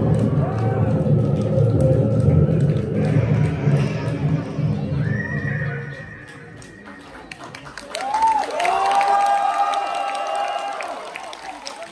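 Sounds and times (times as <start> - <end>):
high sustained tone: 0.0 - 7.4.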